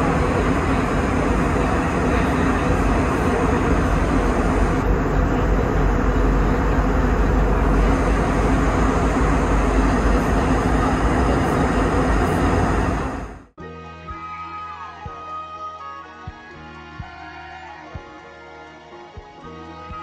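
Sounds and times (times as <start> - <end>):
airliner cabin engine rush: 0.0 - 13.6
steady low hum: 0.0 - 13.6.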